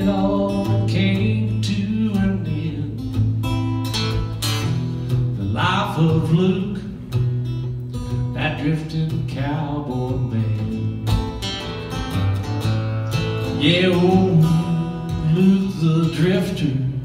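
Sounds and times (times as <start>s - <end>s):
acoustic guitar strumming: 0.0s - 17.0s.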